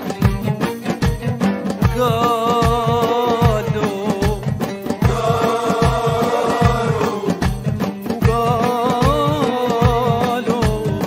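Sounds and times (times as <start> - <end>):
frame drum beats: 0.0 - 11.0
oud: 0.0 - 11.0
men singing long note: 5.0 - 7.5.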